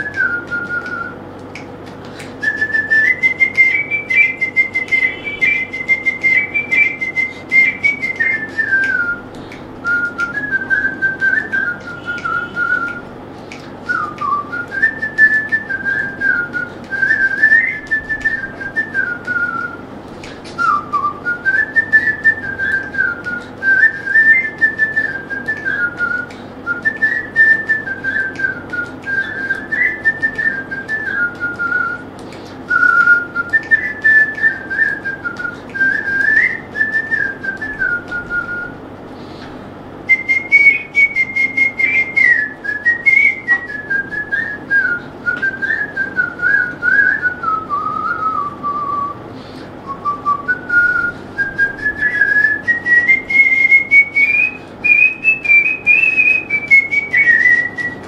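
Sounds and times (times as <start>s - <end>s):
person whistling a melody: 0.0s - 39.4s, 40.1s - 58.0s
faint steady hum: 0.0s - 58.0s.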